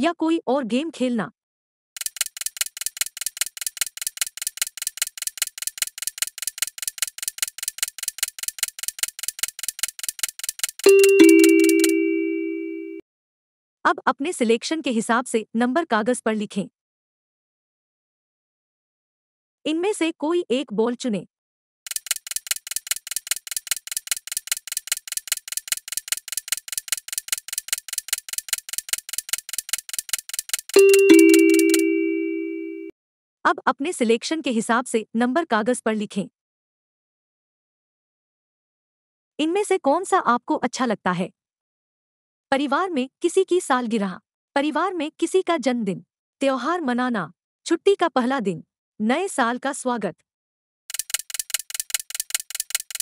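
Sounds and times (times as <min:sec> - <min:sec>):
fast clock ticking: 0:02.0 - 0:12.0, 0:21.9 - 0:31.8, 0:50.9 - 0:53.0.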